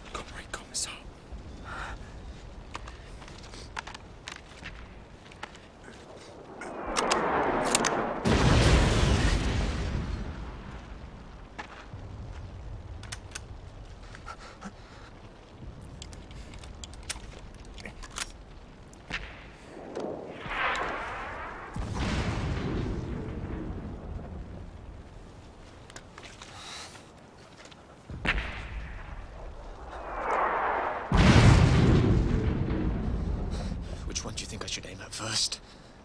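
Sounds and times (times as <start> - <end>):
low rumble: 1.1 - 27.4, 28.0 - 34.4
deep explosion boom: 6.5 - 13.0, 19.1 - 25.1, 28.1 - 34.1.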